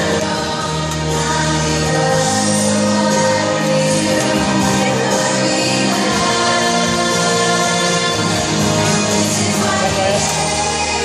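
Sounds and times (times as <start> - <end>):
children's choir singing: 0.0 - 11.0
instrumental backing music: 0.0 - 11.0.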